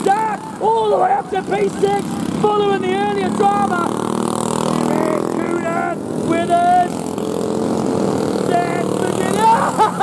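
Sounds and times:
go-kart engines passing: 0.0s - 10.0s.

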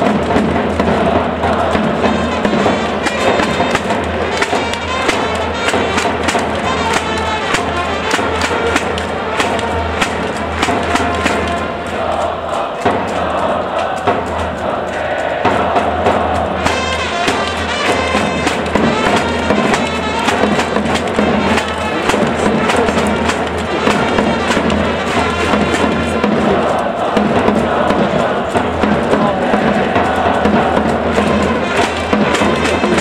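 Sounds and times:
cheering band music: 0.0s - 33.0s
crowd noise: 0.0s - 33.0s
drum beats: 0.0s - 33.0s
trumpets playing fight song: 0.9s - 33.0s.

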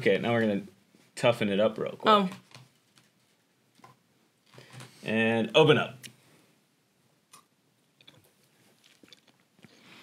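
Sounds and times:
fruit being bitten and chewed: 7.3s - 9.7s.

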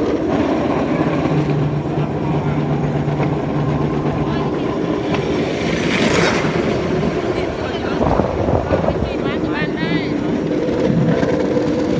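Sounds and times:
engine hum: 0.0s - 11.9s
open vehicle rumble: 0.0s - 11.9s.

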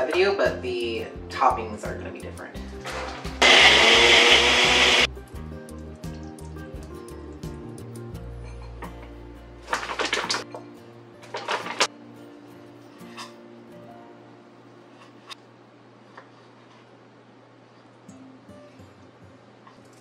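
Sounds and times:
background music: 0.0s - 15.3s
blender running: 3.4s - 5.1s.

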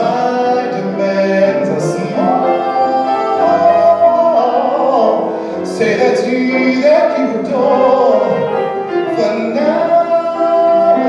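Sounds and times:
person singing: 0.0s - 11.0s
piano accompaniment: 0.0s - 11.0s.

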